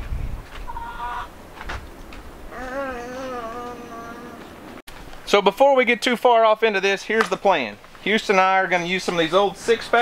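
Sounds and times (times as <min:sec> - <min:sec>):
chicken call: 0:00.7 - 0:01.3.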